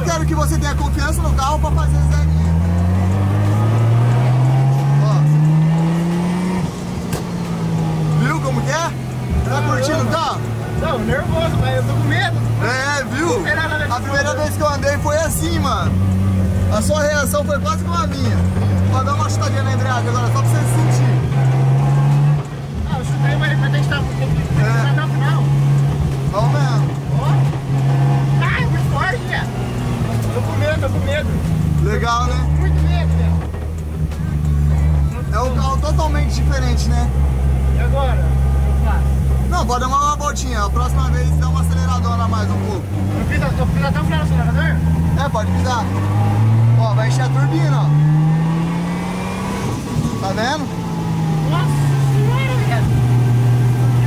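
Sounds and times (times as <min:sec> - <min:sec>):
car engine revving from inside cabin: 0:01.3 - 0:13.8, 0:15.0 - 0:39.5, 0:40.6 - 0:54.0.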